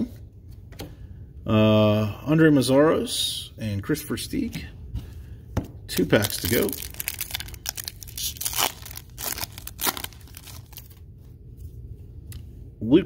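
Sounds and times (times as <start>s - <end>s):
foil wrapper tearing and crinkling: 5.9s - 11.0s.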